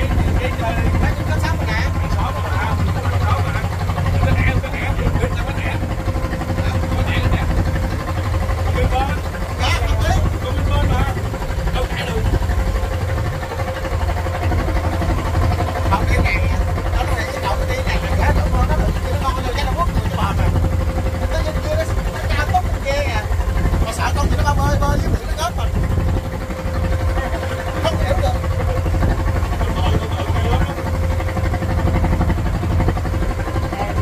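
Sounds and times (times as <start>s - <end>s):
boat engine running: 0.0s - 34.0s
indistinct voices talking: 0.0s - 34.0s.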